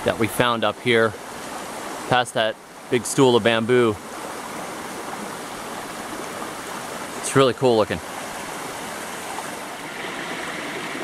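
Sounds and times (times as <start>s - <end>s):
creek water rushing over stones: 0.0s - 11.0s.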